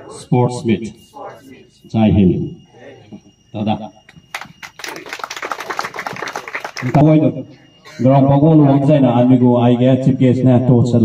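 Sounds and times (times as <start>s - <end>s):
crowd clapping: 4.1s - 7.0s.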